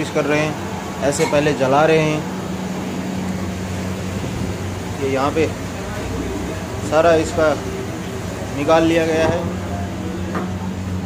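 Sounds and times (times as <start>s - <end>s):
gas burners rushing: 0.0s - 11.0s
low constant hum: 0.0s - 11.0s.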